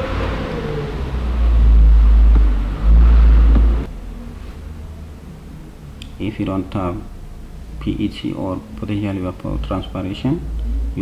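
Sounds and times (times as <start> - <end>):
loud low rumble: 0.0 - 11.0.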